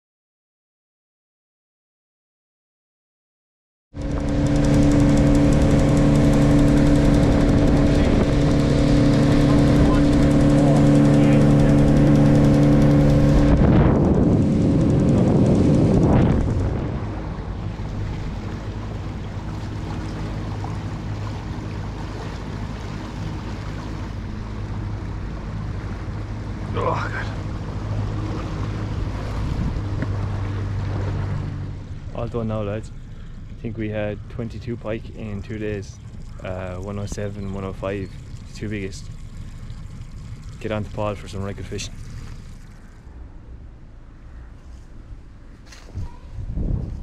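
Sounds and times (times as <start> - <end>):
outboard motor running: 3.9 - 47.0
rushing wind: 4.0 - 26.5, 27.4 - 31.7, 44.1 - 47.0
rushing water: 16.0 - 33.6, 34.2 - 43.2.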